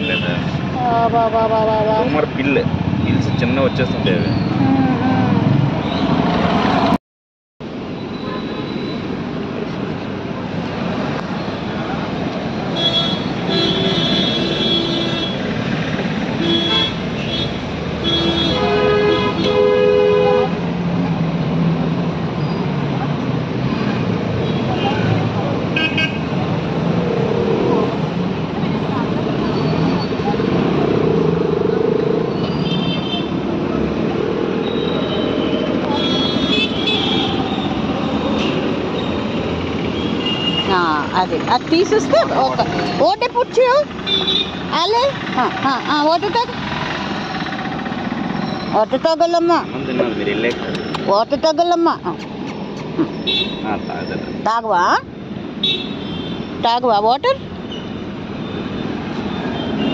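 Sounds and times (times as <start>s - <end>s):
road traffic noise: 0.0s - 7.0s, 7.6s - 59.9s
indistinct voices: 3.0s - 5.6s, 48.7s - 55.0s
vehicle horns honking: 12.7s - 15.5s, 16.4s - 20.6s, 25.8s - 26.3s, 32.5s - 33.4s, 34.6s - 37.8s, 40.0s - 41.0s, 44.0s - 44.7s, 53.1s - 54.2s, 55.6s - 56.5s, 57.7s - 59.9s.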